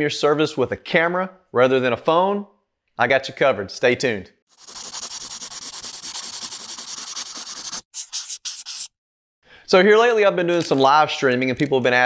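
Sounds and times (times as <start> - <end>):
pencil scribbling: 4.5 - 9.0.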